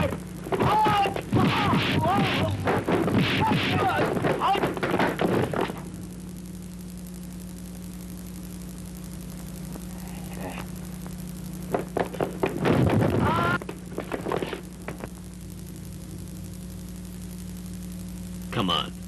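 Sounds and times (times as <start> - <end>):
men shouting and yelling: 0.0 - 5.2, 13.2 - 13.7
fight hit sounds: 0.0 - 5.8
low electrical hum: 0.0 - 19.0
sharp knocks: 0.1 - 5.8.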